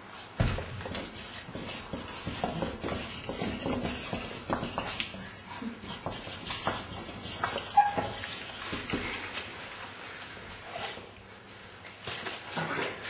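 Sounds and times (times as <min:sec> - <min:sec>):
markers scratching and squeaking on paper: 0:00.8 - 0:09.4.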